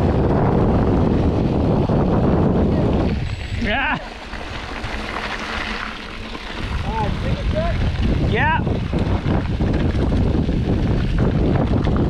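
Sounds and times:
bike tyres rolling on gravel: 0.0s - 12.0s
wind buffeting microphone: 0.0s - 12.0s.

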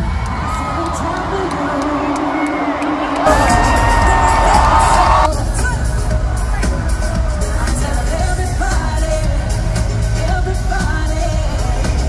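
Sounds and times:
live pop music over loudspeakers: 0.0s - 12.0s
person singing: 0.5s - 12.0s
heavy steady bass: 3.3s - 12.0s.

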